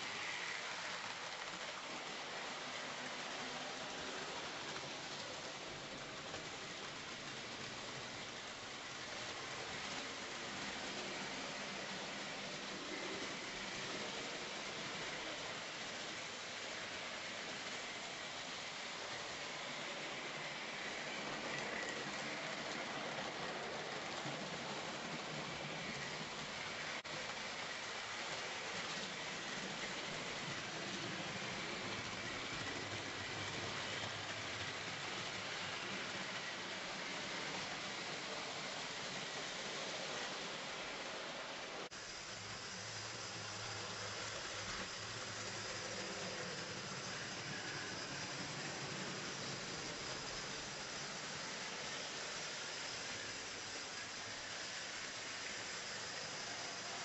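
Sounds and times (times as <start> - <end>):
model train wheels rattling on track: 0.0 - 57.0.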